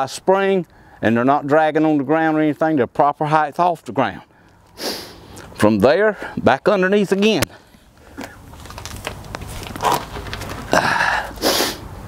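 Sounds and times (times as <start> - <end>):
clothing rustling: 8.1 - 10.9
man huffing breath: 10.7 - 11.9.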